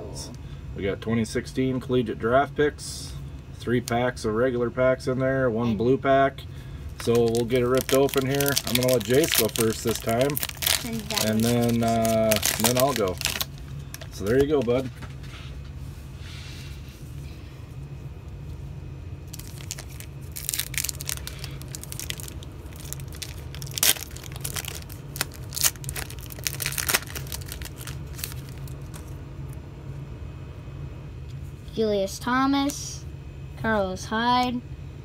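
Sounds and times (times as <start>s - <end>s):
low hum: 0.0s - 35.0s
foil wrapper tearing and crinkling: 7.0s - 14.9s, 19.3s - 29.1s.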